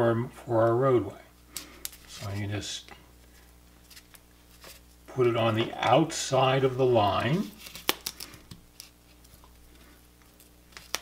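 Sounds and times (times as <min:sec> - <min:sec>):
faint low hum: 0:00.0 - 0:11.0
tape handling sounds: 0:07.4 - 0:11.0.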